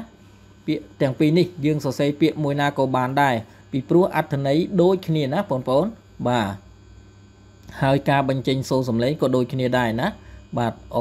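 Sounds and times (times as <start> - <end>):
person speaking: 0.0 - 6.8, 7.6 - 11.0
electrical hum: 0.0 - 11.0.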